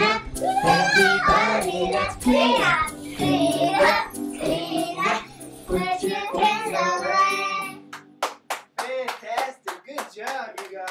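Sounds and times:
children singing: 0.0s - 7.8s
music backing track: 0.0s - 10.8s.

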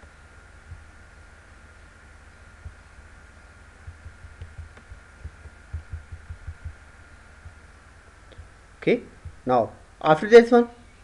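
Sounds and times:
faint low thumps: 0.0s - 1.6s, 2.4s - 9.9s
high-pitched whine and hiss: 0.0s - 11.0s.

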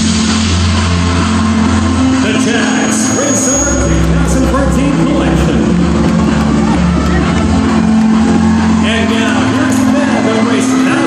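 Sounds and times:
loud music over sound system: 0.0s - 11.0s
crowd shouting: 5.2s - 11.0s.

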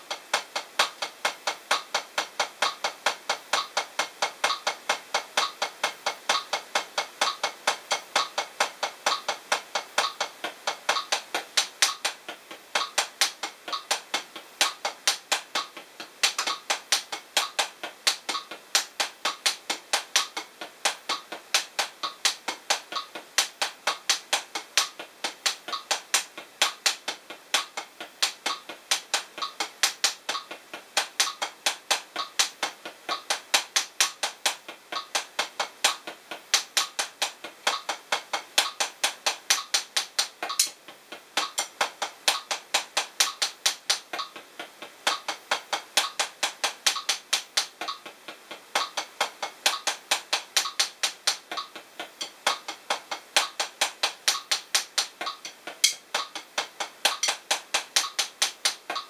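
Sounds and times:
drumsticks tapping practice pad: 0.0s - 59.0s.

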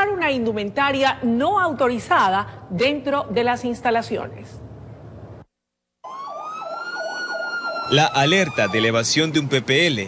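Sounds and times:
warbling siren tone: 6.0s - 9.2s
police siren wailing: 6.0s - 9.5s.

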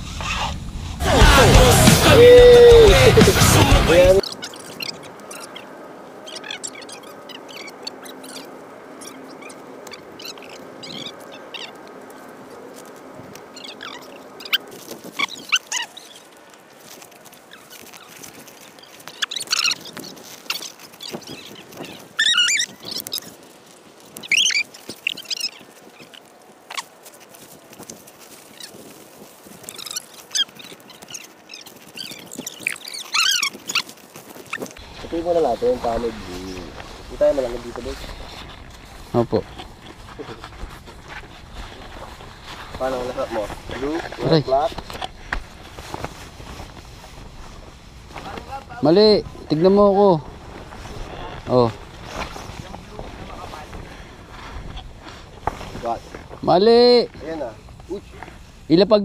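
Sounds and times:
birds calling: 0.0s - 59.0s.

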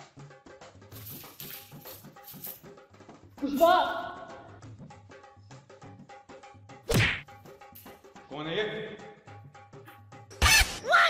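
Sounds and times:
music with percussive beat: 0.0s - 8.3s
loud whack: 6.9s - 7.3s.

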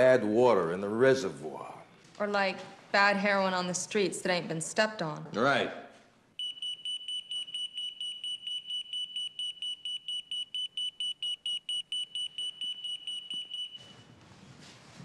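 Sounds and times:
rapid pager beeping: 6.4s - 14.0s.

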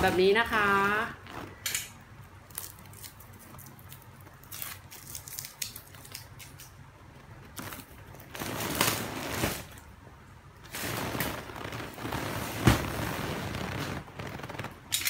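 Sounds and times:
plastic wrapping crinkling: 2.5s - 10.0s, 10.6s - 15.0s.

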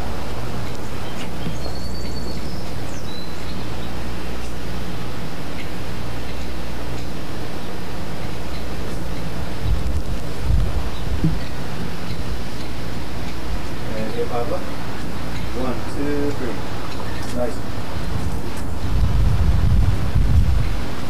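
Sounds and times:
low hum: 0.0s - 21.0s
wind buffeting microphone: 8.4s - 13.9s, 16.4s - 21.0s.

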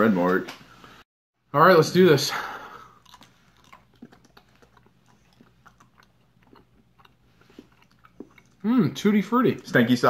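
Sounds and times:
people chewing with mouth smacks: 2.6s - 8.8s.

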